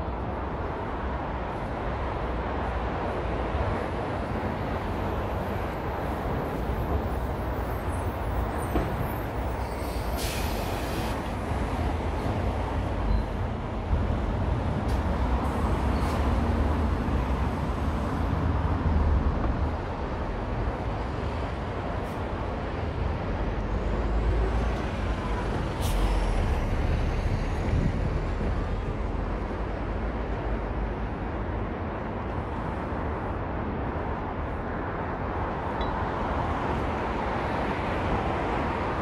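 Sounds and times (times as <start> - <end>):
vehicles driving past: 0.0 - 39.0
short hiss: 9.9 - 11.2.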